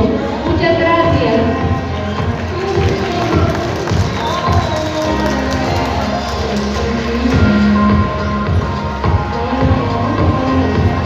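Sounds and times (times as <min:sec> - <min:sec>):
pop music over sound system: 0:00.0 - 0:11.0.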